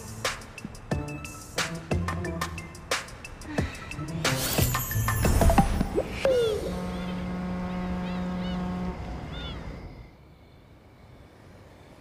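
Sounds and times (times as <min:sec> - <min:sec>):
birds chirping: 0:06.2 - 0:10.9
ship's horn blast: 0:06.4 - 0:10.1.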